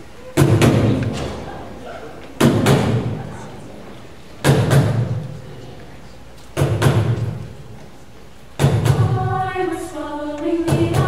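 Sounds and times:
heavy percussion thumps: 0.4s - 1.6s, 2.4s - 3.4s, 4.4s - 5.4s, 6.6s - 7.6s, 8.6s - 9.5s, 10.6s - 11.0s.

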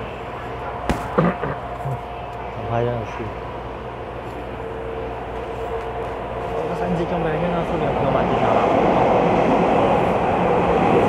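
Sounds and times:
electric train rushing past: 2.0s - 11.0s.

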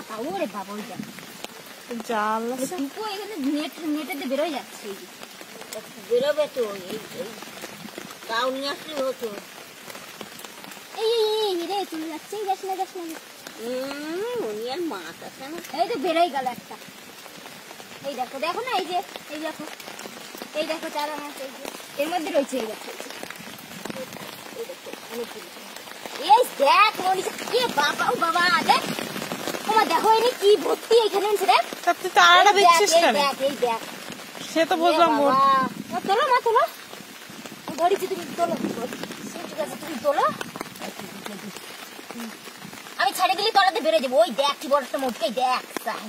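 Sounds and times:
women talking: 0.0s - 1.1s, 1.9s - 7.4s, 8.3s - 9.5s, 11.0s - 16.9s, 18.0s - 19.8s, 20.5s - 23.2s, 23.9s - 28.9s, 29.6s - 36.8s, 37.7s - 42.4s, 43.0s - 46.0s
rain on running water: 0.0s - 46.0s.

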